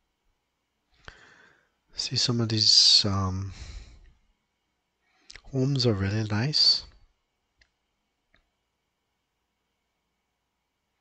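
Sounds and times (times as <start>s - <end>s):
faint click: 7.6s - 8.5s.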